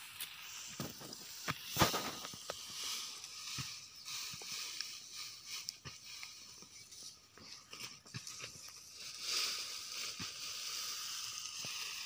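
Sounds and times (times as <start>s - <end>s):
dry stalks rustling and crackling: 0.0s - 12.0s.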